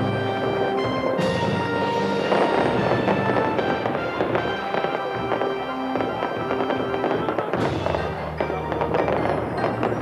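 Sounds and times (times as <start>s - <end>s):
celebratory music: 0.0s - 10.0s
fireworks popping and banging: 0.0s - 10.0s.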